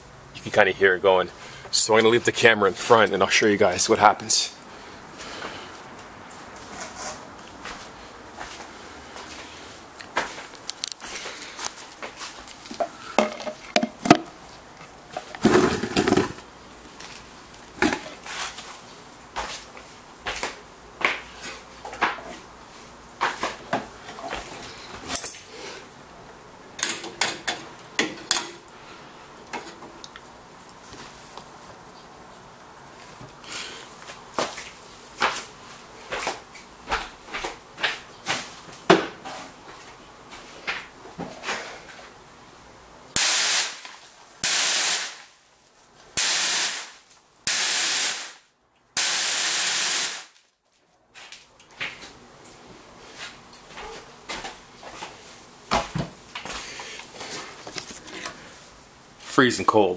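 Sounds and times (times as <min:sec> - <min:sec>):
short spray blasts: 0:43.2 - 0:45.3, 0:46.2 - 0:48.4, 0:49.0 - 0:50.4.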